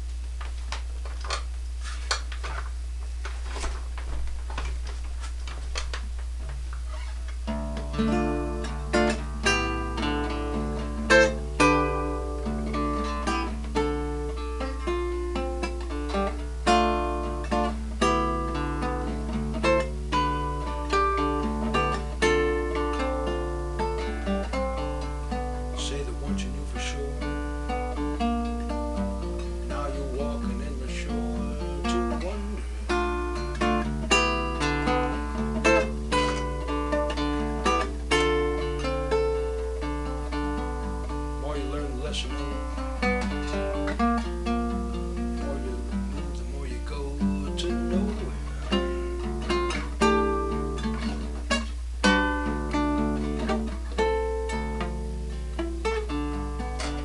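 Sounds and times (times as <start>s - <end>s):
acoustic guitar: 0.0s - 57.0s
steady low hum: 0.0s - 57.0s.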